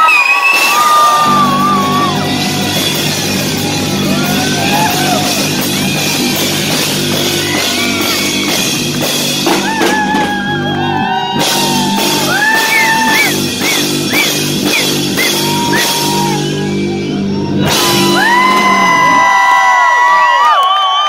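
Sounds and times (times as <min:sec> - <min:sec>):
live rock band playing: 0:00.4 - 0:19.2.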